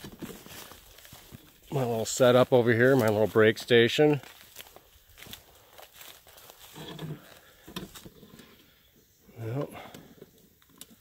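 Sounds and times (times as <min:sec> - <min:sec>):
footsteps crunching dry leaves: 0:00.0 - 0:08.1.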